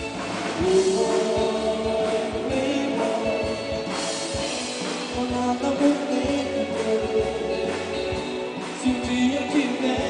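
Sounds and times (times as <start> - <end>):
drums playing steady beat: 0.0 - 10.0
electric guitar: 0.0 - 10.0.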